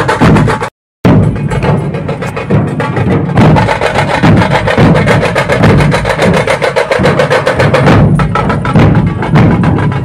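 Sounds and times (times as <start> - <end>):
barrel drums beaten with sticks: 0.0 - 10.0.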